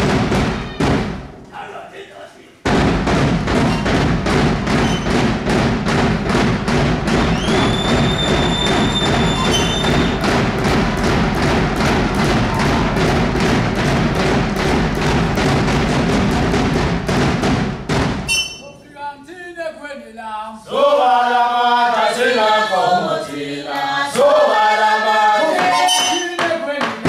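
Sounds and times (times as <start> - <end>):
hand drum beaten fast: 2.7 - 18.3
shrill whistle: 7.3 - 10.2, 18.3 - 18.8, 25.8 - 26.4.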